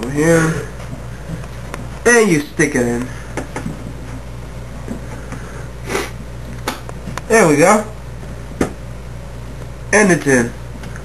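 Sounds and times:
steady low hum: 0.0s - 11.0s
breathy puff: 5.3s - 6.2s.

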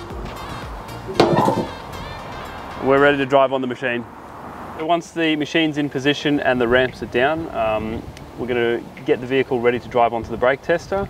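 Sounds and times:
metal ramp clanking down: 1.1s - 1.9s.

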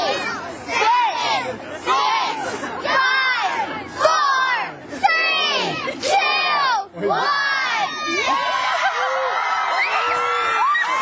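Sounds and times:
children screaming and cheering: 7.3s - 11.0s.

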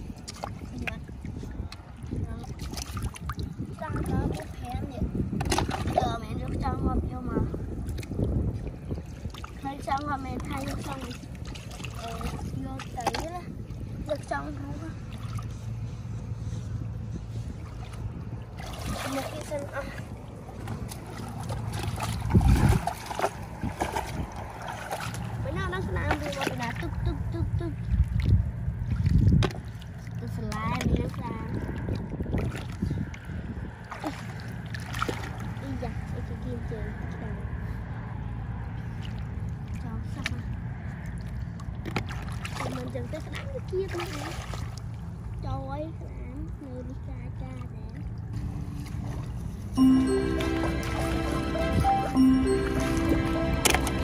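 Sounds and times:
wind rumble on microphone: 0.0s - 49.8s
mud and water sloshing: 0.0s - 54.0s.

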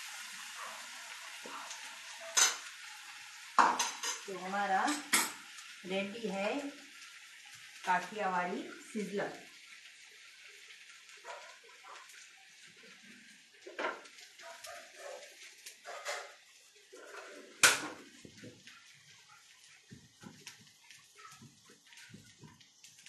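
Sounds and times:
dishes and utensils clinking: 2.2s - 2.7s, 15.8s - 16.4s.

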